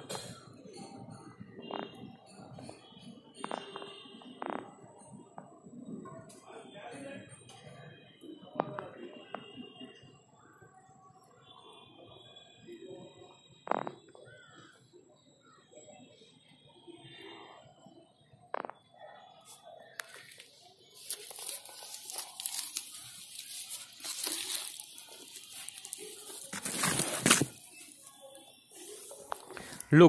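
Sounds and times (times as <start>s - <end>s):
plastic sack rustling and crinkling: 20.2s - 29.9s.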